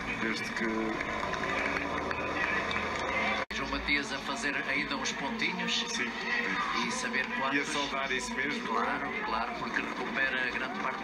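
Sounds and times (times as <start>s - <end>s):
man commentating on tv: 0.0s - 11.0s.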